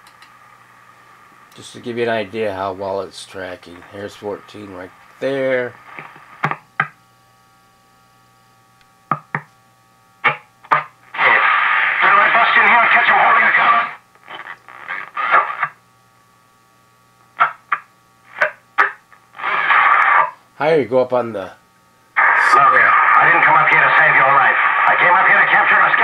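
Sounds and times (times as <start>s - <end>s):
radio broadcast voices: 2.1s - 6.1s, 11.1s - 15.8s, 19.4s - 20.4s, 22.2s - 26.0s
radio static: 3.3s - 6.6s, 10.2s - 15.8s, 17.4s - 20.4s, 22.2s - 26.0s.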